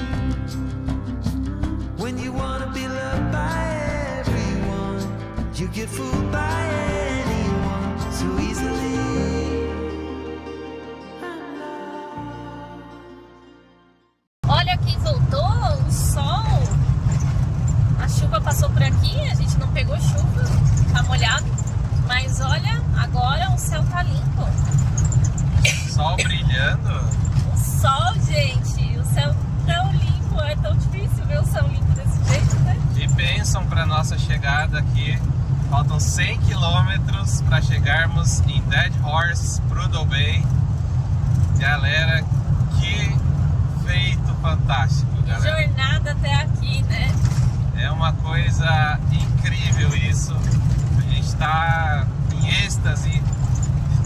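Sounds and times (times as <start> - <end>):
vehicle tyres and engine rumble: 0.0 - 9.3, 14.4 - 54.0
voices talking: 18.0 - 24.8, 25.6 - 40.4, 47.8 - 54.0.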